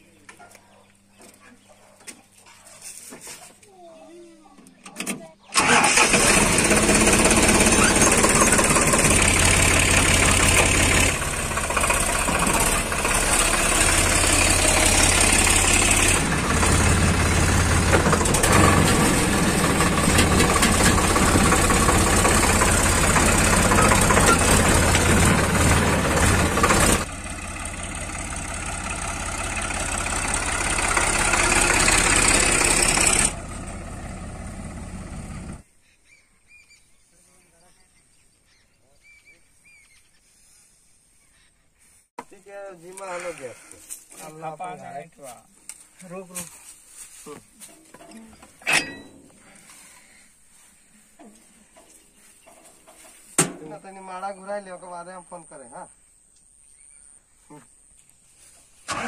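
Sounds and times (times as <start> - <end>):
tractor diesel engine running: 5.0 - 35.7, 58.4 - 59.0.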